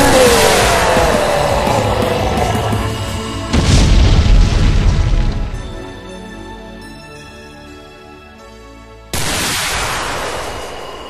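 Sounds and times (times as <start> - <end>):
hissing rush: 0.0 - 4.6
deep explosion boom: 0.0 - 6.0
music: 0.0 - 11.0.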